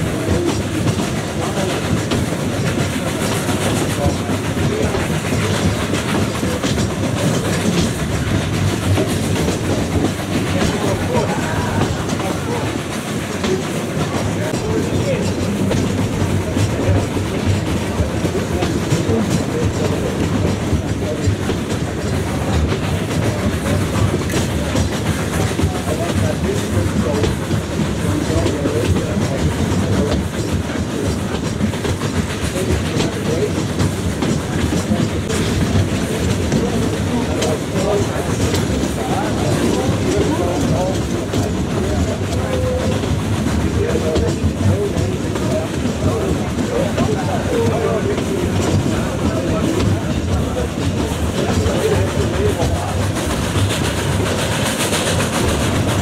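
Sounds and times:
railway coach rumbling on track: 0:00.0 - 0:56.0.

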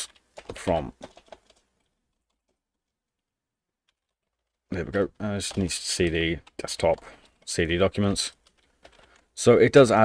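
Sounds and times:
computer keyboard keystrokes: 0:05.4 - 0:09.3.

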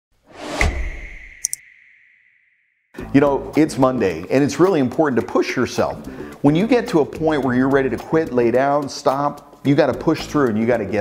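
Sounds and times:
whoosh: 0:00.3 - 0:02.6.

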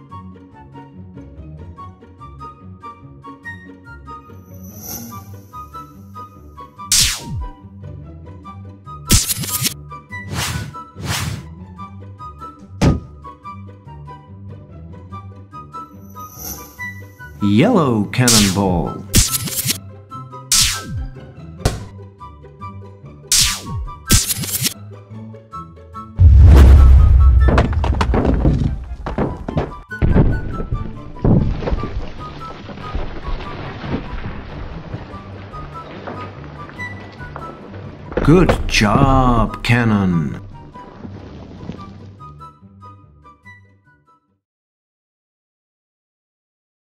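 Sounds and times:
light cartoon music: 0:00.0 - 0:26.2
short swooshes: 0:09.1 - 0:11.4, 0:26.2 - 0:28.9
heavy thunk: 0:12.7 - 0:13.2, 0:21.7 - 0:21.9, 0:26.2 - 0:32.0
bricks tumbling thuds: 0:26.2 - 0:39.4.

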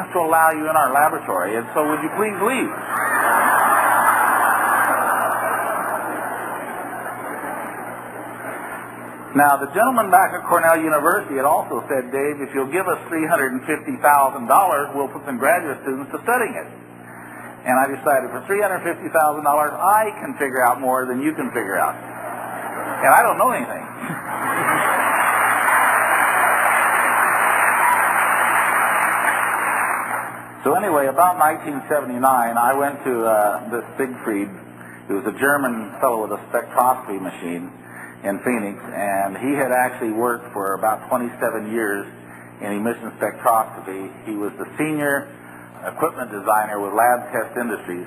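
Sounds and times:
crowd laughing: 0:01.8 - 0:09.3, 0:22.0 - 0:30.5
audience applause: 0:02.1 - 0:08.8, 0:24.2 - 0:30.6.

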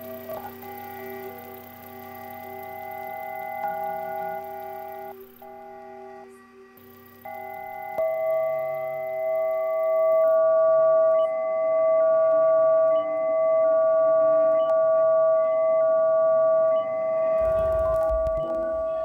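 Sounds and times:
electronic sine tone chords: 0:00.0 - 0:19.0
clicks: 0:06.8 - 0:10.4, 0:17.4 - 0:18.8
low bass rumble: 0:17.4 - 0:19.0.

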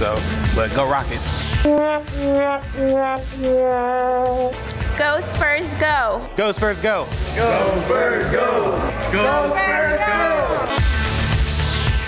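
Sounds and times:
horn-like wind instrument long notes: 0:01.5 - 0:04.6.

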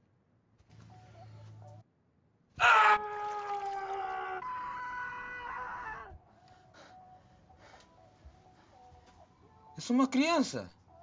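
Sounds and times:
young man screaming: 0:02.6 - 0:06.2.

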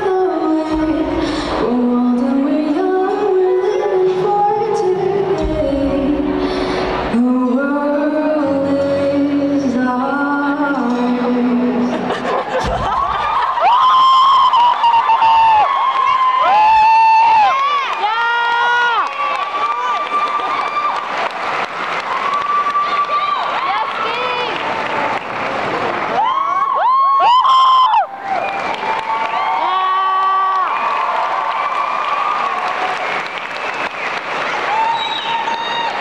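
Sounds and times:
audience cheering: 0:12.4 - 0:36.0
people clapping: 0:12.4 - 0:36.0.

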